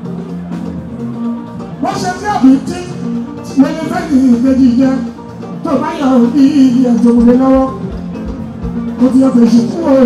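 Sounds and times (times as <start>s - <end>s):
drums steady beat: 0.0s - 10.0s.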